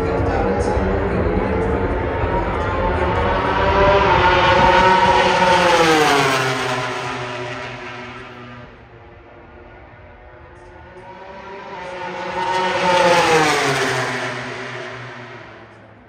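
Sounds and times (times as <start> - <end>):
racing motorcycle passing at full throttle: 0.0 - 16.0.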